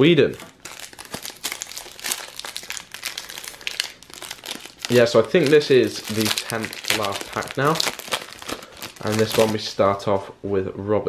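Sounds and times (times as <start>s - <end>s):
foil wrapper crinkling: 0.2s - 9.8s.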